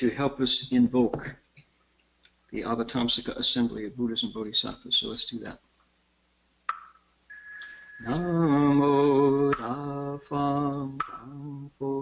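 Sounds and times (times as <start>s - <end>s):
bell ringing high tone: 7.3s - 8.4s.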